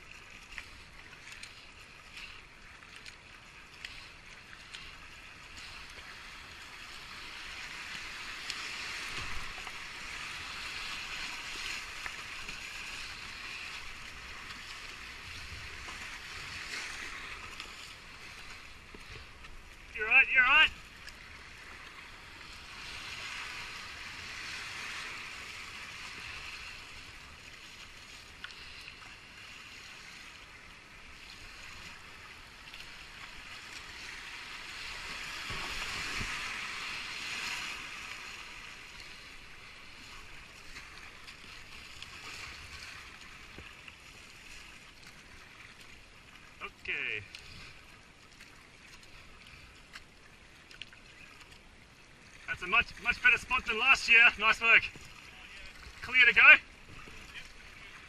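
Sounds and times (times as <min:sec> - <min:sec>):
whitewater rushing: 0:19.9 - 0:20.8, 0:52.5 - 0:58.0.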